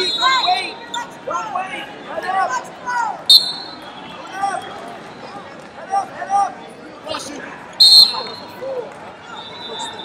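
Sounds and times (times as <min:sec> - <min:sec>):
referee's whistle blast: 0:00.0 - 0:00.7, 0:03.3 - 0:04.2, 0:07.8 - 0:08.5, 0:09.3 - 0:10.0.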